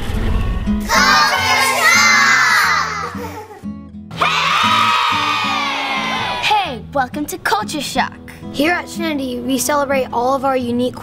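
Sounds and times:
background music: 0.0 - 11.0
children shouting and cheering: 0.9 - 6.7.

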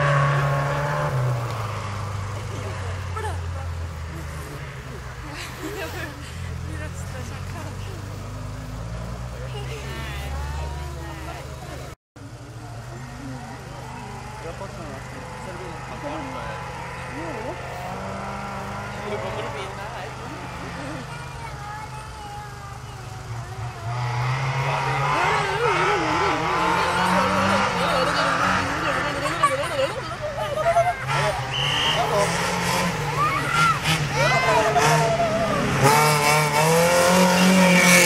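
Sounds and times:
rally car engine revving: 0.0 - 38.0
spectators talking: 0.0 - 38.0.

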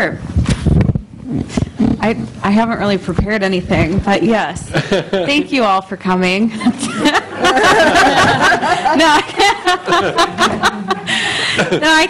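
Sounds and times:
microphone handling noise: 0.2 - 4.6.

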